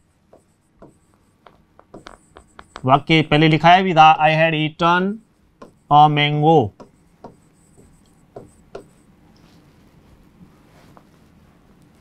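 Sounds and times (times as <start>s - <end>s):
marker writing on whiteboard: 0.2s - 3.0s, 5.2s - 9.1s.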